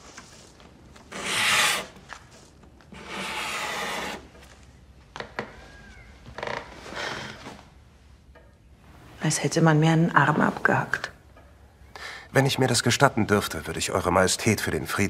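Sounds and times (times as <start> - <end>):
pencil scratching on paper: 1.1 - 2.0, 3.0 - 4.2.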